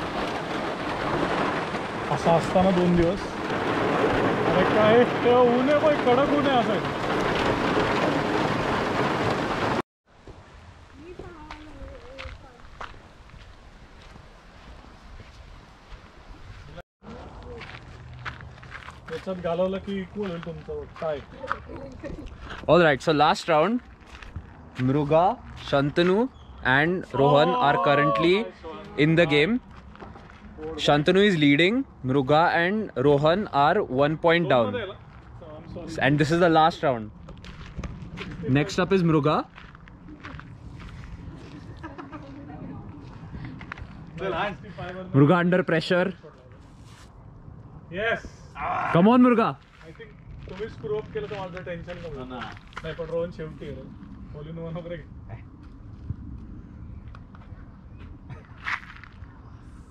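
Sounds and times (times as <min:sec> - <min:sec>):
steady low rumble: 0:34.9 - 0:48.6, 0:49.6 - 0:59.9.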